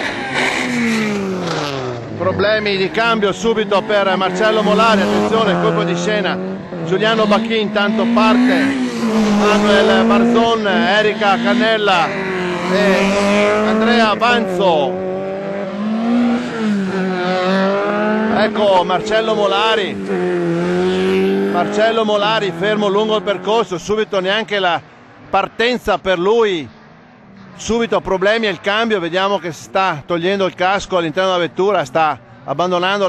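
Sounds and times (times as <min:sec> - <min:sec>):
race car engine revving: 0:00.0 - 0:25.1.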